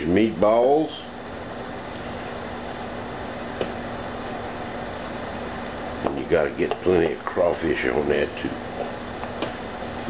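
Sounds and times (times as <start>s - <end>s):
appliance humming: 0.0s - 10.0s.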